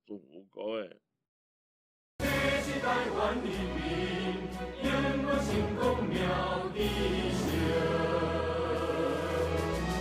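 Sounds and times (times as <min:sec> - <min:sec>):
choir singing long notes: 0:02.2 - 0:10.0.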